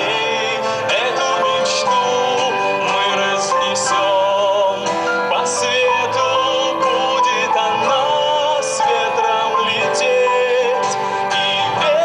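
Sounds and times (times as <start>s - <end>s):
acoustic guitar accompaniment: 0.0s - 12.0s
man singing: 0.0s - 12.0s.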